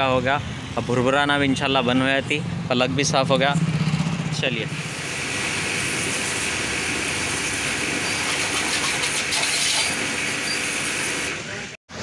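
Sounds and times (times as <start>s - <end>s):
high-pressure water spraying: 4.7s - 12.0s.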